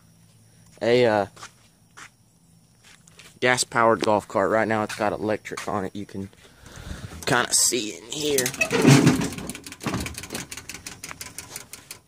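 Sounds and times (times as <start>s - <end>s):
sharp light clicks and knocks: 9.2s - 12.0s.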